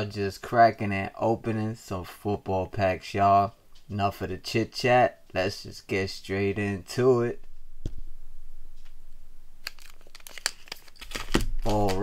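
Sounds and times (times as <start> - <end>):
foil wrappers crinkling: 9.6 - 12.0.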